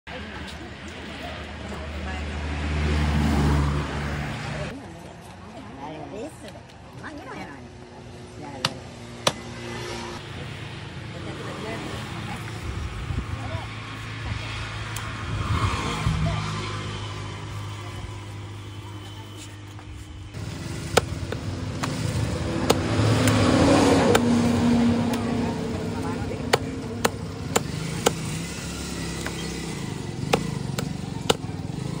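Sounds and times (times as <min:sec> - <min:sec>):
machete chopping into wood: 0:26.5 - 0:28.3, 0:30.3 - 0:31.5.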